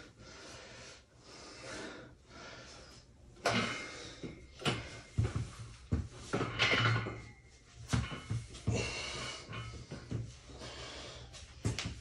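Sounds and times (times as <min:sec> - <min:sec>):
barbell knocks and clinks: 0:04.6 - 0:08.7.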